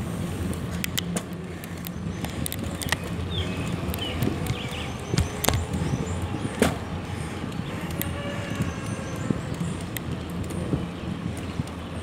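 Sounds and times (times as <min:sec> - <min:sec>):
vehicle road rumble: 0:00.0 - 0:12.0.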